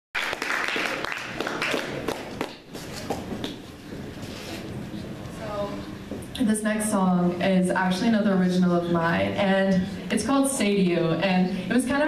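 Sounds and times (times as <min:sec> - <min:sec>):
audience applauding: 0:00.2 - 0:02.7.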